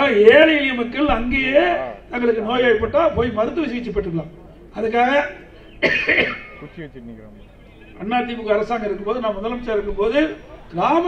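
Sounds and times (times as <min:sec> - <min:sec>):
man speaking into a microphone: 0:00.0 - 0:05.5, 0:06.4 - 0:11.0
throat clearing: 0:05.8 - 0:06.7.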